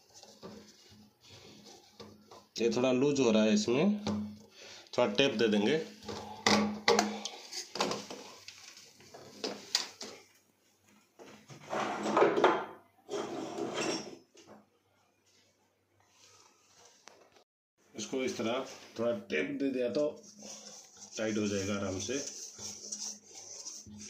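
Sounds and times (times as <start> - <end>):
plastic pipe clicks and knocks: 6.1 - 8.2.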